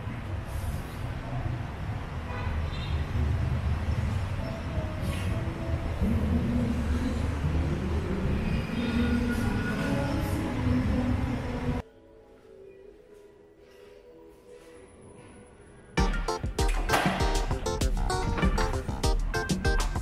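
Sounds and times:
street traffic rumble: 0.0 - 11.8.

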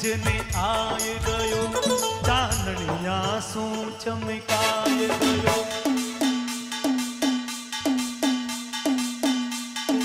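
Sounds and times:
drum strokes sliding in pitch: 4.6 - 10.0.

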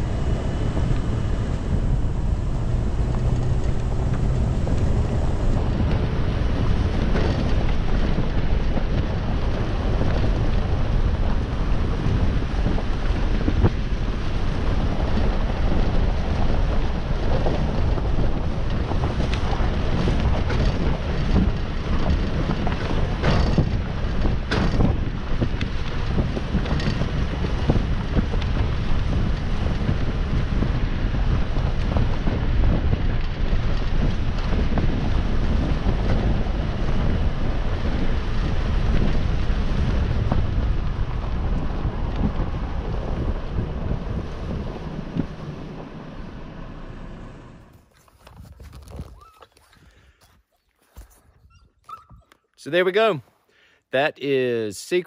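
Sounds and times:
truck engine rumble: 0.0 - 50.5
wind buffeting microphone: 0.0 - 53.1.

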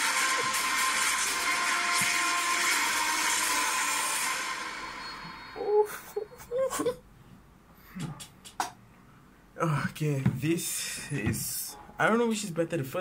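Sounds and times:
trailer music through speaker: 0.0 - 6.1
person's voice: 9.6 - 13.0.

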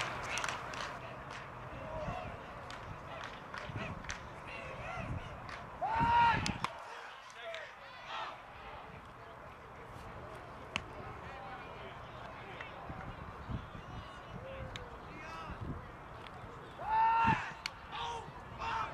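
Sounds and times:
voices of players and spectators: 0.0 - 18.9
loud drawn-out shout: 5.8 - 7.1, 16.8 - 18.9.

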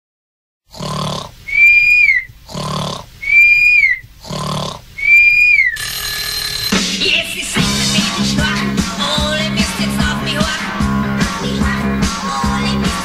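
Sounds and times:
comic snoring: 0.7 - 1.4, 2.4 - 3.6, 4.2 - 4.9
whistle on out-breath: 1.5 - 2.3, 3.2 - 4.1, 5.0 - 5.8.

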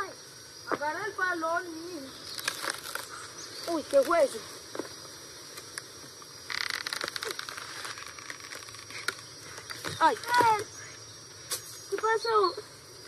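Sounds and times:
crackling rustle: 0.6 - 12.9.

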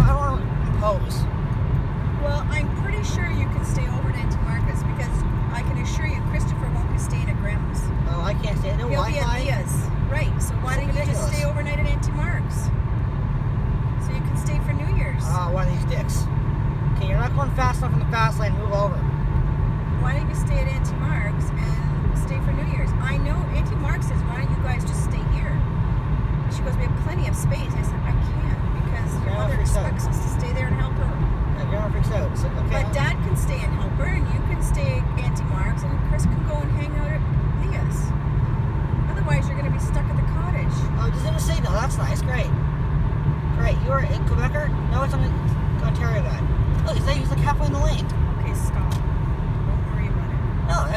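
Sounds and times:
car cabin road rumble: 0.0 - 50.9.

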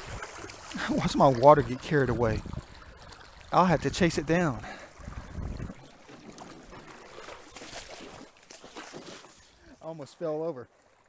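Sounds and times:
splashing steps in water: 0.0 - 10.0
man's voice: 3.5 - 4.6.

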